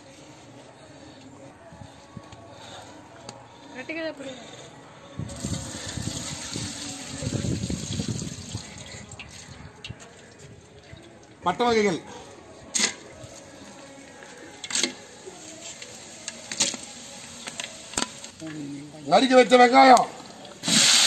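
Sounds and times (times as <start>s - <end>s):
water pouring through a strainer: 5.4s - 9.6s
water splashing into a pot: 20.4s - 21.0s.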